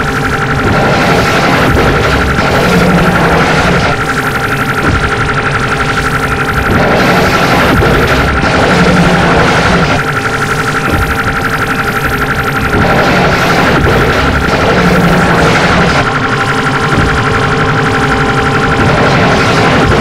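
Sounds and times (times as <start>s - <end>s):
harsh noise music distortion: 0.0s - 20.0s.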